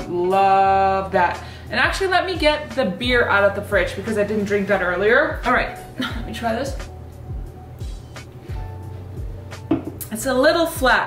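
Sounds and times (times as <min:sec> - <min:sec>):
background music with bass beat: 0:05.3 - 0:10.1.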